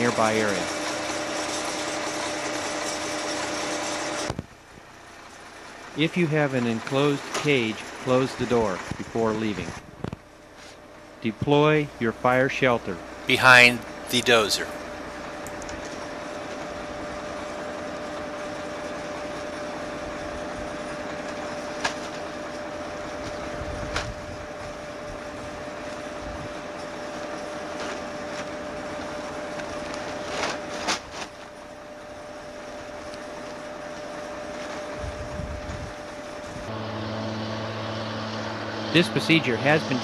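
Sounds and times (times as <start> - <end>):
bulldozer diesel engine running: 0.0 - 14.7, 31.7 - 40.0
low engine hum: 34.9 - 40.0.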